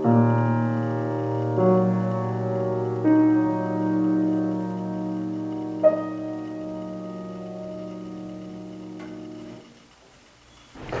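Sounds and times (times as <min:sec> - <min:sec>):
grand piano chord: 0:00.0 - 0:09.7.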